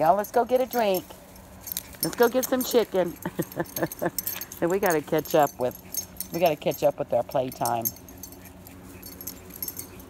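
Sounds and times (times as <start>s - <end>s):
dog tags jingling: 0.0s - 10.0s.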